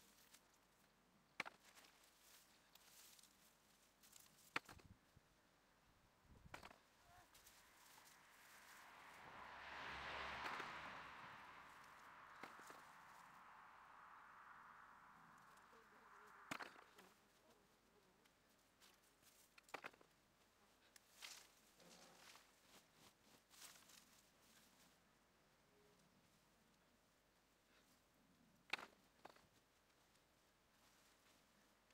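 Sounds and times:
faint rush: 0:06.5 - 0:19.5.

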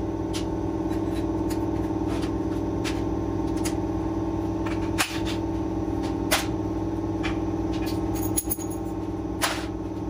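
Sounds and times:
steady droning hum: 0:00.0 - 0:10.0
metallic clinks of engine parts: 0:08.1 - 0:08.9.

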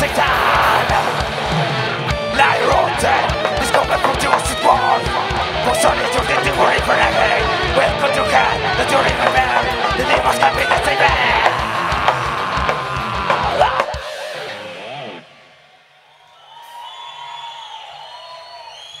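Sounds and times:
heavy metal band playing live: 0:00.0 - 0:15.3.

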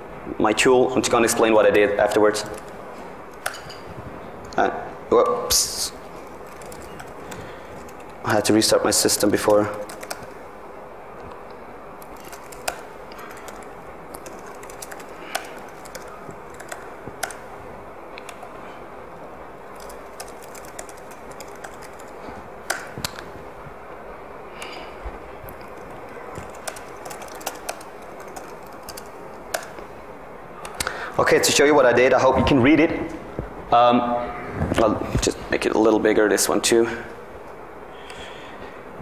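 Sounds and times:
room hiss: 0:00.0 - 0:39.0
keyboard keystroke clicks: 0:09.4 - 0:10.4, 0:12.0 - 0:17.5, 0:22.7 - 0:23.3, 0:25.5 - 0:29.8.

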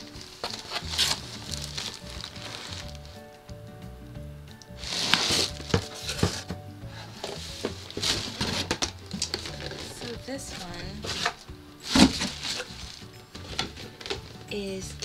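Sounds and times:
box scraping out of carton: 0:00.0 - 0:03.2, 0:04.8 - 0:14.5
cardboard rustling: 0:00.0 - 0:03.3, 0:04.8 - 0:14.5
background music: 0:00.0 - 0:15.0.

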